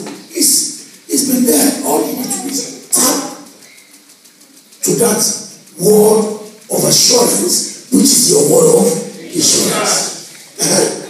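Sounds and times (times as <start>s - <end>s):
man preaching over loudspeaker: 0.0s - 3.6s, 4.8s - 11.0s.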